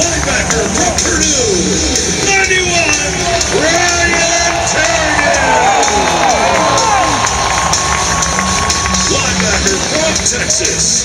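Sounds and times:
music with steady beat: 0:00.0 - 0:11.0
stadium crowd noise: 0:00.0 - 0:11.0.

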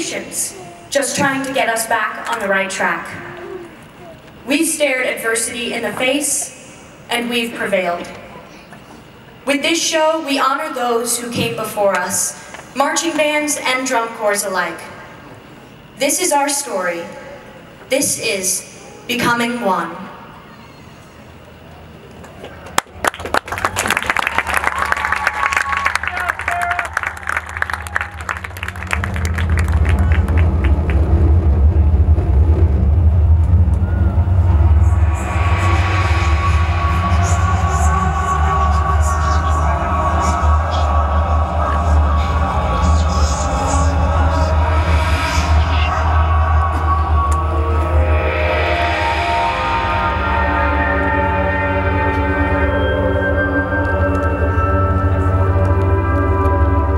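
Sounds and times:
audience applause: 0:22.6 - 0:31.5
deep low drone: 0:23.4 - 0:56.9
marching band playing held chords: 0:27.0 - 0:56.9.

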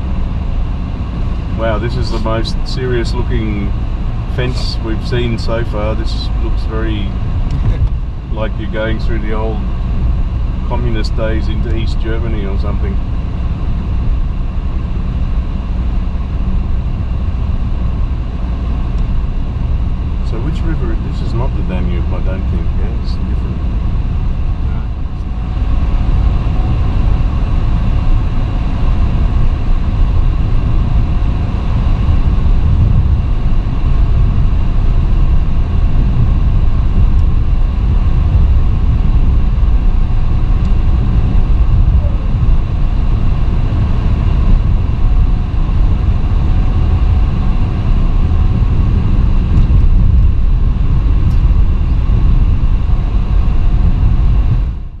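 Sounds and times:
road and engine rumble in car: 0:00.0 - 0:55.0.

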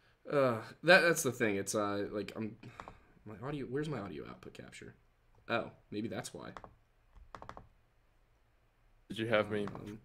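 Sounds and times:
computer keyboard clicks: 0:06.5 - 0:07.7.

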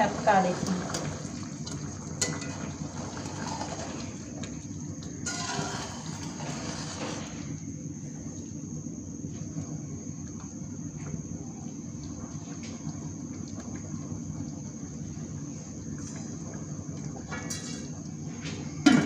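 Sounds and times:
boiling water sloshing and bubbling: 0:00.0 - 0:19.0.

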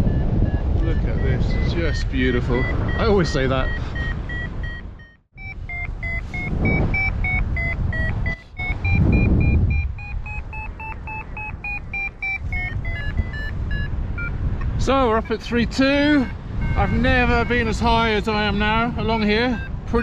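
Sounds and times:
variometer beeping: 0:00.0 - 0:20.0
wind on microphone: 0:00.0 - 0:20.0.

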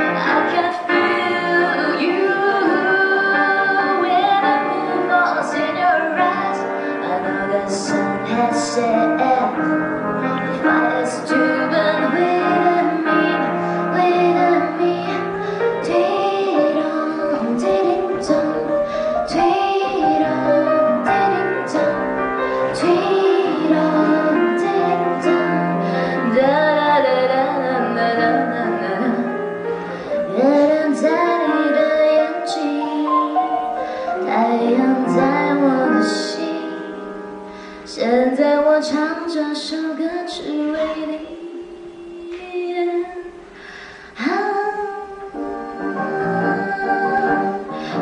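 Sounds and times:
woman singing pop ballad: 0:00.0 - 0:09.8, 0:10.6 - 0:22.0, 0:22.7 - 0:29.4, 0:30.2 - 0:43.4, 0:44.0 - 0:48.0
grand piano accompaniment: 0:00.0 - 0:48.0.

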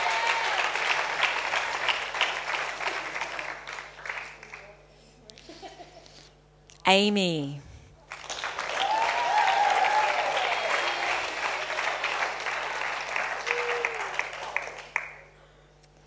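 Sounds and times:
audience applauding: 0:00.0 - 0:04.8, 0:08.1 - 0:15.3.

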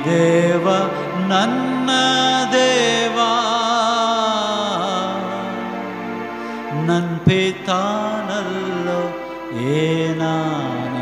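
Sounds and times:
man singing into microphone: 0:00.0 - 0:05.9, 0:06.7 - 0:11.0.

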